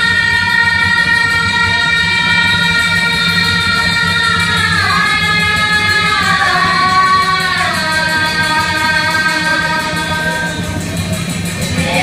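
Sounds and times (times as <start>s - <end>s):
low instrumental drone: 0.0s - 12.0s
woman singing through pa system: 0.0s - 12.0s.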